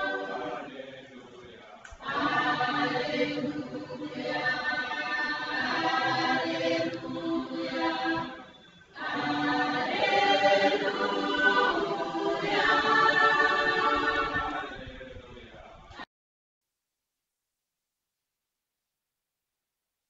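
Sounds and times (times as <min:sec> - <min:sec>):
choir singing a chant: 0:00.0 - 0:15.1.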